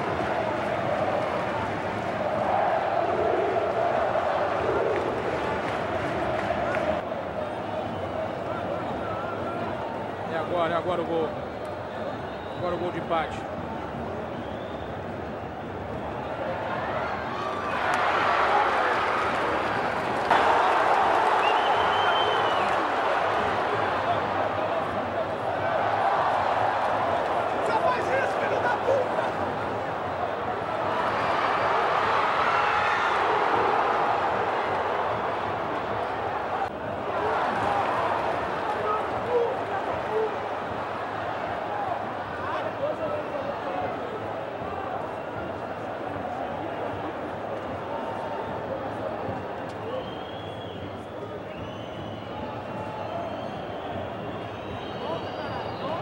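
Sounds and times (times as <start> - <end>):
crowd clapping: 0.0 - 2.3, 3.7 - 7.0, 17.7 - 25.0
stadium crowd cheering: 0.0 - 56.0.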